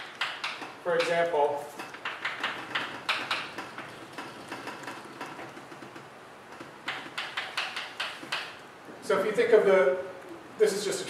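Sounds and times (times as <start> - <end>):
chalk tapping and scratching: 0.0 - 5.4, 6.5 - 8.6.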